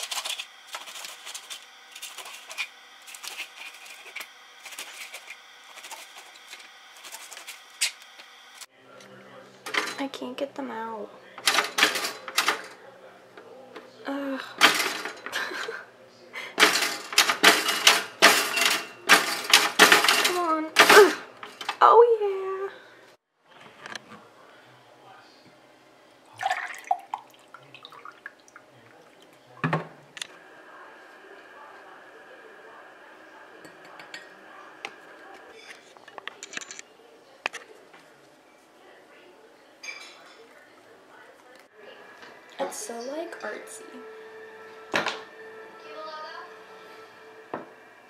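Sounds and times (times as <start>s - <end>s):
toaster clattering and rattling: 0.0s - 6.1s, 9.7s - 10.1s, 11.4s - 12.8s, 14.6s - 15.8s, 16.6s - 21.8s.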